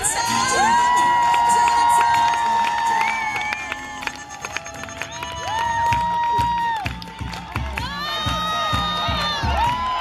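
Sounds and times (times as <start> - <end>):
crowd cheering: 0.0 - 10.0
upbeat dance music: 0.0 - 10.0.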